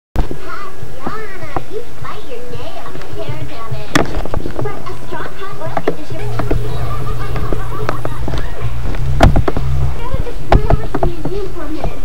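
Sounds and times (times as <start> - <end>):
voices making wordless sounds: 0.4 - 12.0
background music: 5.0 - 10.7.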